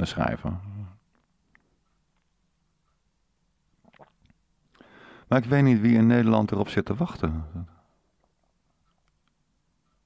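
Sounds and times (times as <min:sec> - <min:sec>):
faint mouth clicks: 0:03.8 - 0:04.9
soft intake of breath: 0:04.7 - 0:05.3.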